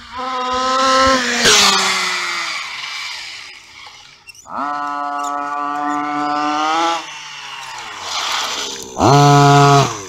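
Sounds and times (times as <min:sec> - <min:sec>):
rough rushing of coasting car: 0:00.0 - 0:10.0
two-stroke engine buzzing: 0:00.0 - 0:10.0.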